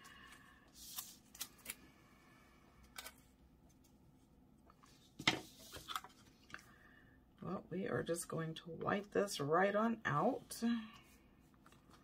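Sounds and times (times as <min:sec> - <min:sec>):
paper sheets rustling: 0:05.2 - 0:06.3.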